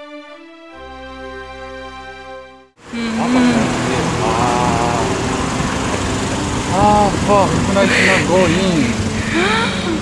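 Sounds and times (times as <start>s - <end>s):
car engines running: 2.8s - 10.0s
road noise: 2.8s - 10.0s.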